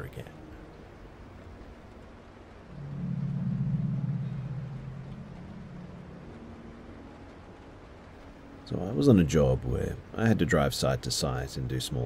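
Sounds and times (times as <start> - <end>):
low dark ambient drone: 0.0 - 10.6
faint steady hum: 0.0 - 12.0.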